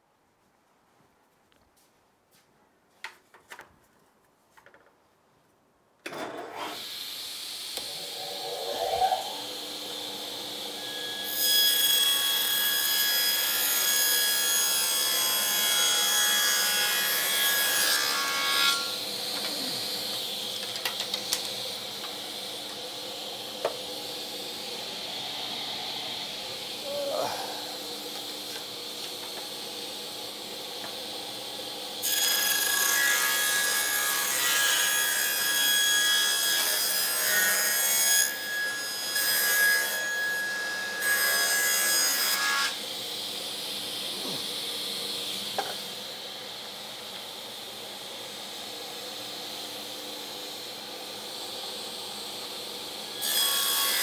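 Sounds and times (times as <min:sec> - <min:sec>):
table saw ripping a board: 0:06.1 - 0:07.0.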